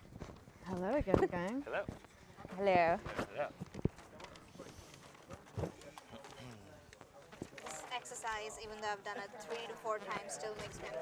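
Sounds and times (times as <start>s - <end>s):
indistinct chatter of many people: 0.6s - 11.0s.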